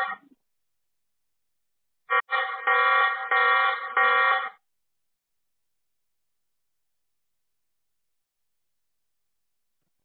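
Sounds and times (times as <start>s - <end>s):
electronic alarm pulses: 2.1s - 4.6s.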